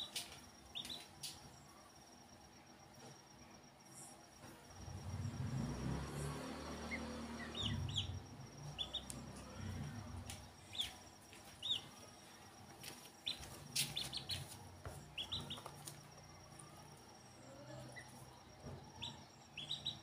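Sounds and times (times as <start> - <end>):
ducklings peeping: 0.0 - 1.1, 6.5 - 12.0, 13.2 - 16.7, 17.8 - 20.0.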